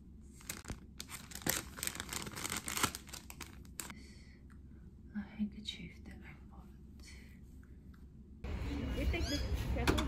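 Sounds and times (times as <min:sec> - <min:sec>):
plastic packaging crinkling: 0:00.3 - 0:03.9.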